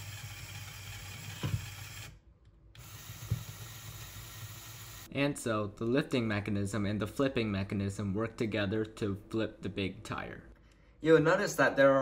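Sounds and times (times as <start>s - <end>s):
toy motor whirring through gears: 0.0s - 2.2s, 2.8s - 5.1s.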